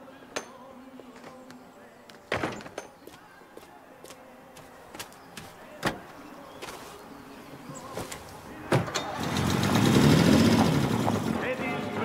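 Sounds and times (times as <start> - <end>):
music with singing: 0.0 - 10.6
car engine starting and running: 8.7 - 12.0.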